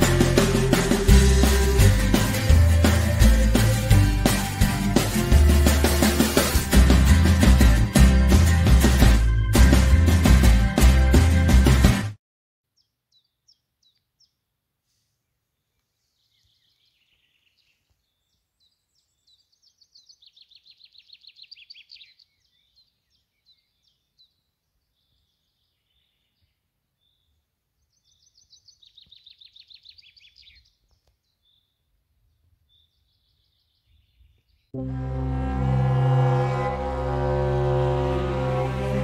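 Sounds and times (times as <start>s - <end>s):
quiet bird chirps: 12.7s - 14.4s, 15.2s - 34.7s
songbirds singing: 12.7s - 14.4s, 15.6s - 34.8s.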